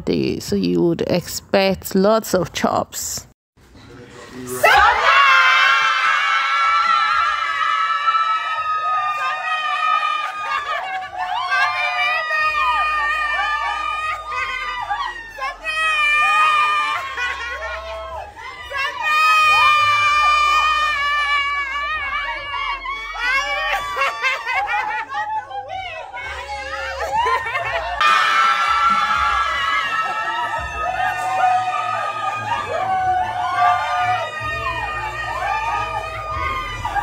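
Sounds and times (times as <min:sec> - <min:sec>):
voices shouting and cheering: 0:04.3 - 0:37.0
woman screaming with excitement: 0:05.2 - 0:37.0.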